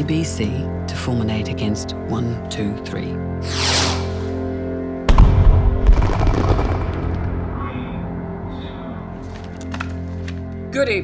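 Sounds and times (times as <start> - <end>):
musical drone: 1.5 - 10.7
loud bang: 5.1 - 7.4.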